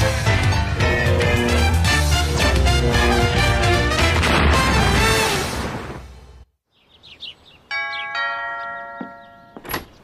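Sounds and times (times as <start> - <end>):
two-note doorbell chime: 7.7 - 9.7.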